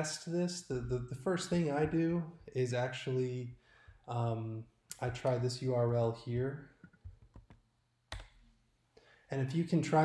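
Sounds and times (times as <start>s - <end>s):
keyboard and mouse clicks: 6.8s - 8.5s.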